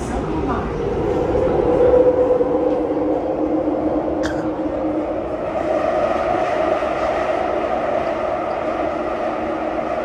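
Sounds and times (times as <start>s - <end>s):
train car rumble: 0.0s - 10.0s.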